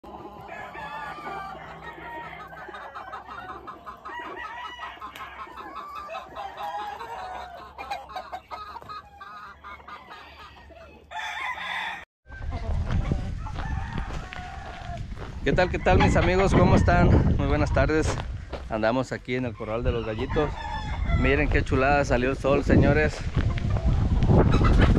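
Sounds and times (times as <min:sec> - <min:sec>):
roosters crowing: 0:00.0 - 0:17.1, 0:19.6 - 0:22.1
hens clucking: 0:00.0 - 0:24.9.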